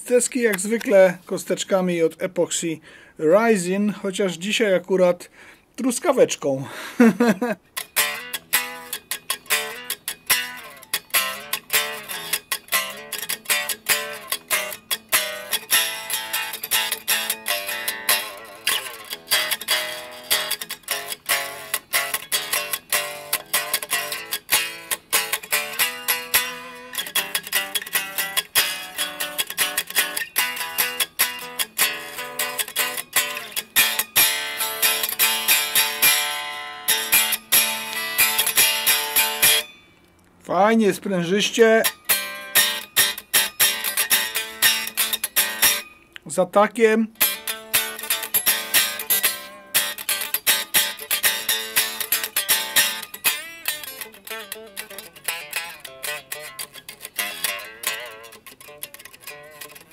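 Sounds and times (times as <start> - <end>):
electric guitar fast picking: 7.8 - 39.8, 41.6 - 46.0, 47.2 - 59.9.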